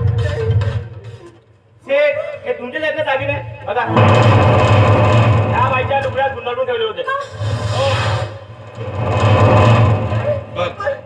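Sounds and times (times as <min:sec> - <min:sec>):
loud low rumble: 0:03.9 - 0:06.6, 0:08.6 - 0:10.8.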